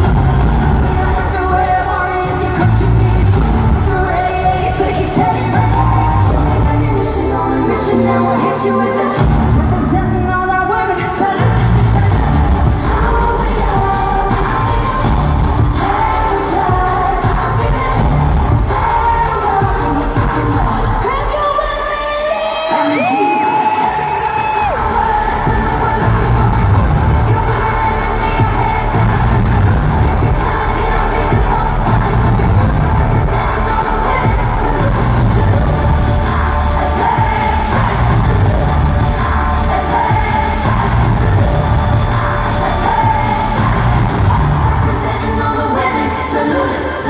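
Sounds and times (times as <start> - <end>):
live pop music with heavy bass: 0.0 - 47.0
crowd cheering: 10.9 - 45.6.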